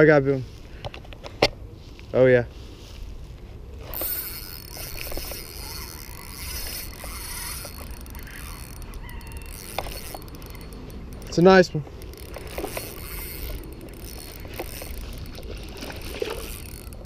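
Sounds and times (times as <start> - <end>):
fishing reel cranking: 3.8 - 17.0
reel mechanical ticks: 3.8 - 17.0.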